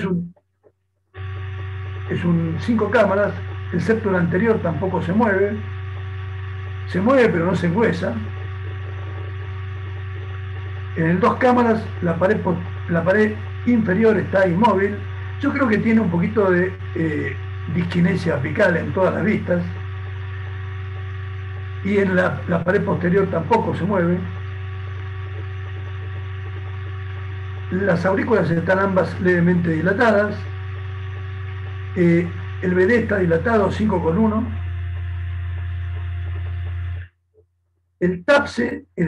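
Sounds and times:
low electrical hum: 0.0s - 39.0s
steady high tones: 1.2s - 37.1s.

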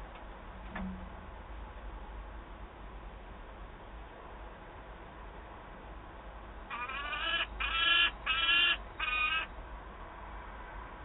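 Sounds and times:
falcon calling: 6.7s - 9.5s.

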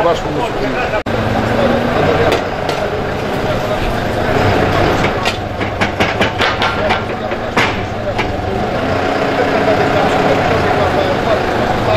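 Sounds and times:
diesel engine running: 0.0s - 11.9s
bucket knocks and clanks: 4.9s - 8.5s.

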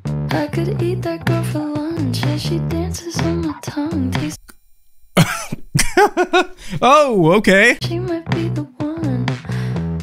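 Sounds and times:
woman singing pop song: 0.3s - 4.4s, 7.8s - 9.8s
man laughing loudly: 5.2s - 7.0s.

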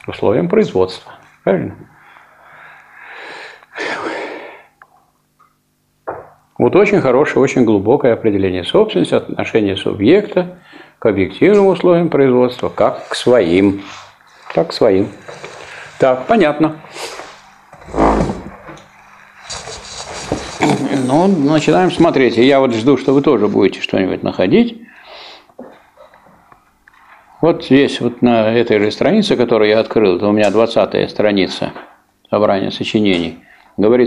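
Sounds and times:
person breathing: 1.9s - 4.8s, 10.6s - 11.0s, 15.4s - 16.0s, 24.8s - 26.4s, 33.4s - 33.8s
book pages rustling: 18.9s - 22.1s.

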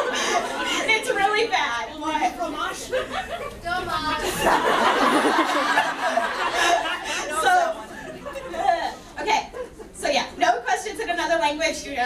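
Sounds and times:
indistinct chatter in a hall: 0.0s - 12.0s.

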